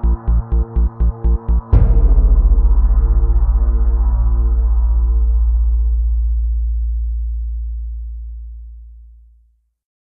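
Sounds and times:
deep low booming tone: 0.0 - 9.4.

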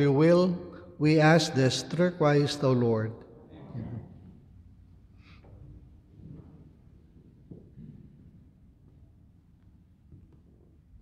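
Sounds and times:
man speaking with church echo: 0.0 - 4.4.

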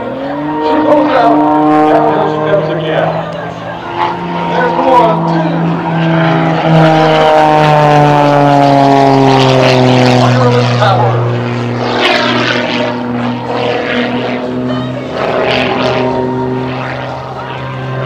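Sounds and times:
propeller plane engine passing: 0.0 - 18.0.

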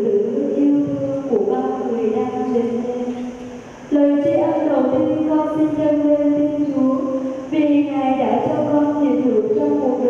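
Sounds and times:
woman chanting into a microphone: 0.0 - 10.0.

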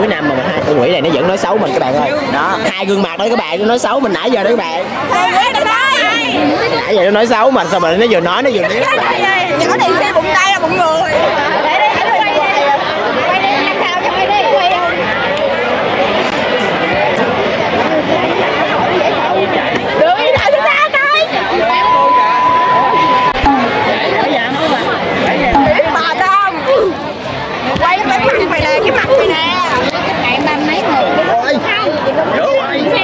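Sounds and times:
babble of seated crowd: 0.0 - 33.0
girls chatting: 4.7 - 7.0, 7.6 - 33.0.

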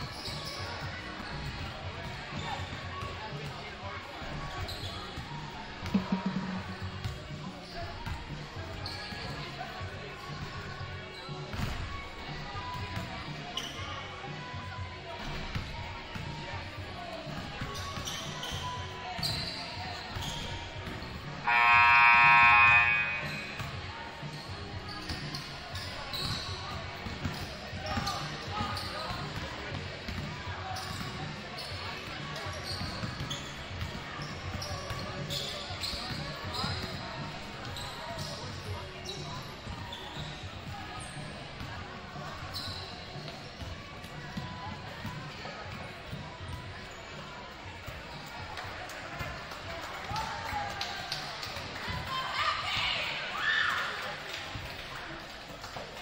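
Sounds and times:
crowd chatter echoing: 0.0 - 56.0
basketballs bouncing on gym floor: 4.2 - 10.8, 26.1 - 46.9
scoreboard horn: 6.0 - 6.8, 21.5 - 23.6.

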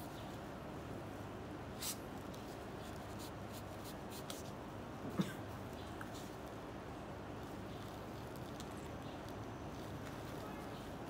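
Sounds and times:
steady low background hum: 0.0 - 11.0
gloved hands scratching and rustling: 1.8 - 4.6, 7.3 - 11.0.

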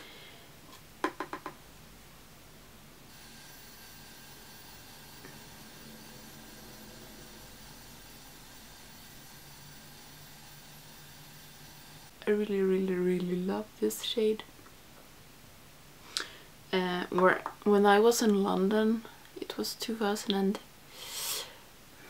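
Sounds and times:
high electrical whine: 3.1 - 12.5
faint hiss: 20.8 - 22.0.

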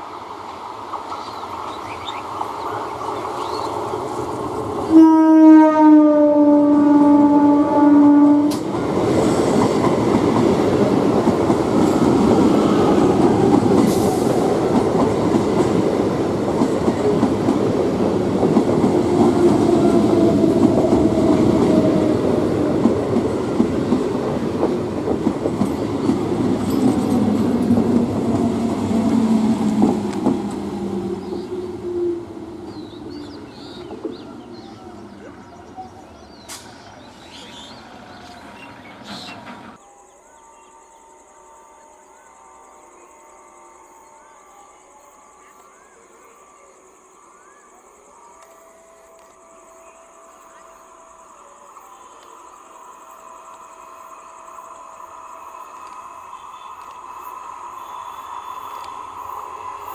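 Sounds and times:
train horn blast: 4.9 - 8.7
train wheels clattering: 8.5 - 31.5.

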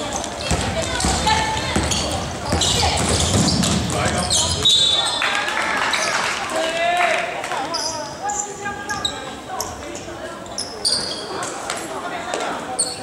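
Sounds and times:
voices: 0.0 - 13.0
sneaker squeaks on hardwood: 0.2 - 5.2, 10.4 - 11.5, 12.8 - 13.0
basketball knocks: 0.4 - 4.6.

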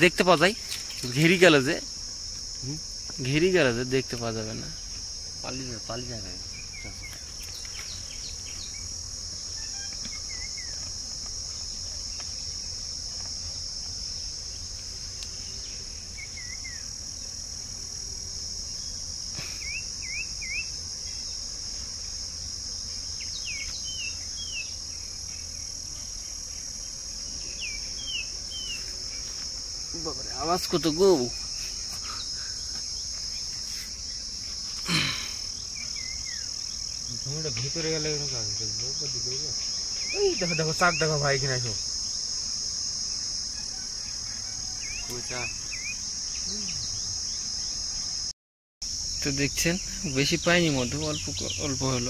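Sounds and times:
insect chorus: 0.0 - 52.0
birds chirping: 5.5 - 10.8, 49.6 - 52.0.

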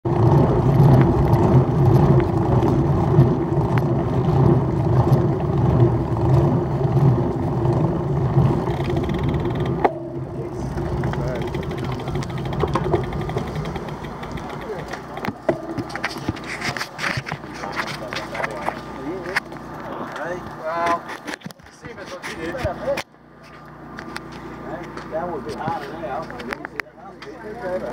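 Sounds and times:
bike tyres rolling on asphalt: 0.0 - 27.9
cyclists' voices: 0.1 - 27.9.

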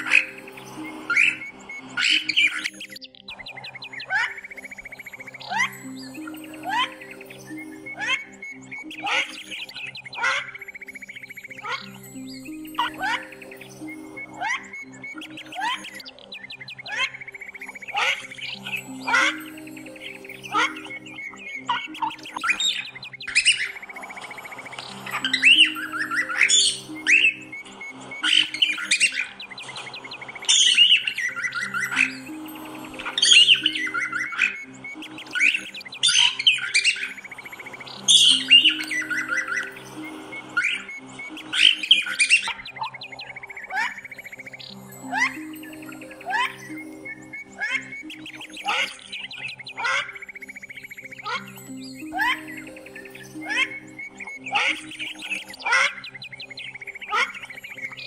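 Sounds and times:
soft background music: 0.0 - 58.0
cockatiel chirping and squawking: 3.5 - 4.4, 8.9 - 10.6, 15.3 - 17.2, 17.9 - 19.5, 47.6 - 50.2, 54.5 - 56.3.

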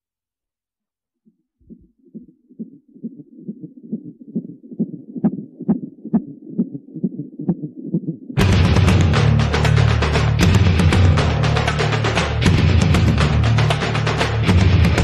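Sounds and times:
heartbeat pulsing: 1.6 - 9.4
metal band with distorted guitars: 8.4 - 15.0
sharp drum-like hits: 8.4 - 15.0.

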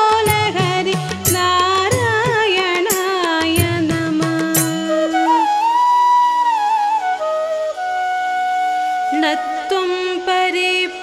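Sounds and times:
flute playing slow melody: 4.9 - 10.5.

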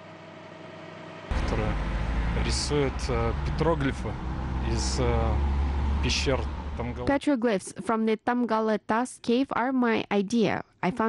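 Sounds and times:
city street traffic rumble: 1.3 - 7.1
man talking: 1.3 - 7.1.

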